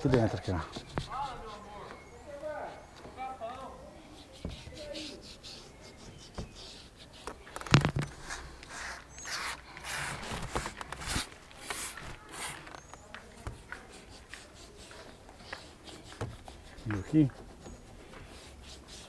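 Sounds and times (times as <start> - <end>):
spray bottle squirting: 4.1 - 12.9.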